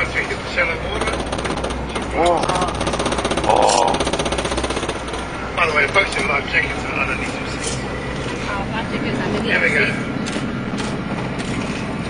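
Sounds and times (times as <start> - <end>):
vehicle engine drone: 0.0 - 12.0.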